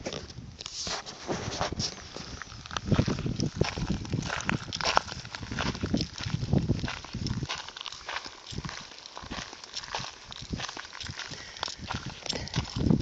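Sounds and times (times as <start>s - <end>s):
wind buffeting microphone: 1.2s - 13.0s.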